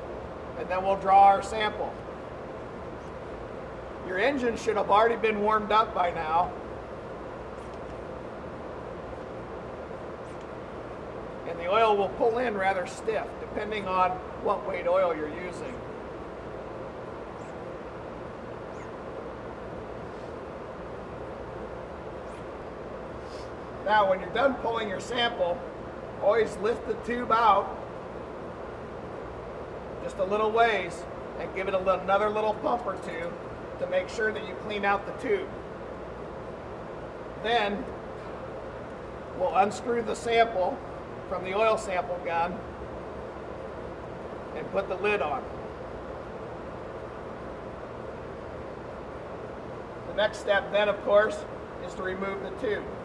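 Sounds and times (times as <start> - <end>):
machinery hum: 0.0 - 53.0
man speaking: 11.5 - 15.8, 23.8 - 25.6, 26.2 - 27.8, 30.0 - 35.5, 39.4 - 42.6, 44.6 - 45.5, 50.1 - 53.0.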